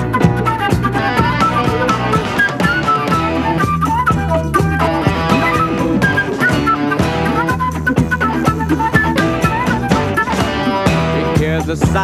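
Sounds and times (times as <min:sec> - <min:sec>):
bending lead guitar melody: 0:00.0 - 0:12.0
rock song with guitar and drums: 0:00.0 - 0:12.0.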